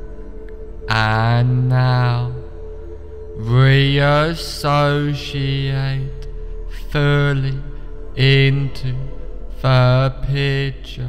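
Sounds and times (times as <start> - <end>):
low voice chanting: 0.0 - 11.0
steady drone: 0.0 - 11.0.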